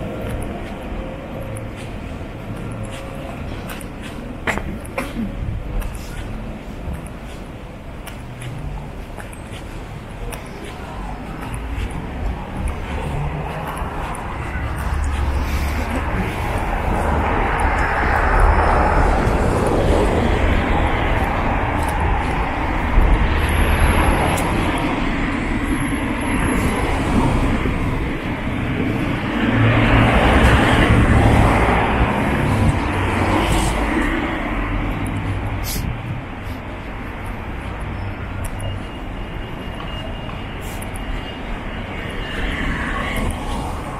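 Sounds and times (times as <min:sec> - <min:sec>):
low traffic rumble: 0:00.0 - 0:43.9
cars passing close by: 0:08.1 - 0:43.9.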